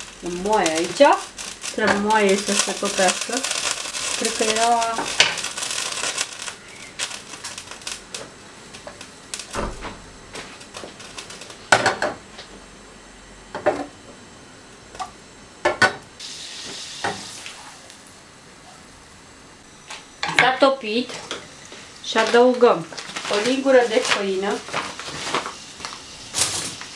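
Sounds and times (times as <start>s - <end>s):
butter sizzling in a pan: 0.0s - 9.6s, 10.2s - 12.1s, 16.2s - 18.0s, 20.2s - 26.9s.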